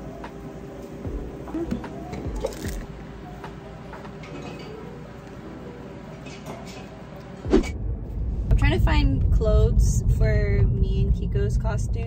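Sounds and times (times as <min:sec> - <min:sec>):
road rumble inside car: 0:07.8 - 0:12.0
woman talking: 0:08.5 - 0:12.0.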